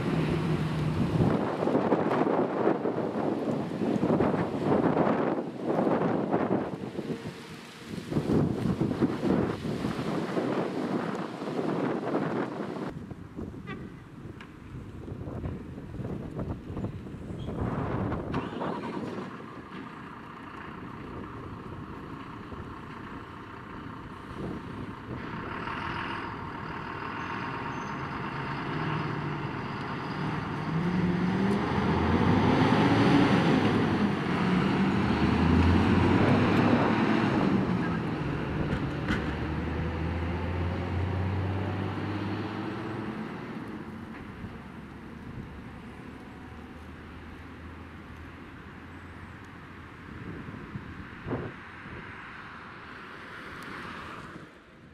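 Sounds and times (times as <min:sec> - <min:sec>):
diesel truck engine accelerating: 0:00.0 - 0:13.0, 0:16.0 - 0:52.8.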